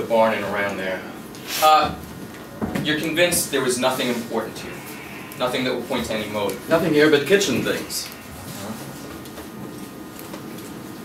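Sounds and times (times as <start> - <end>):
faint room hiss: 0.0 - 10.9.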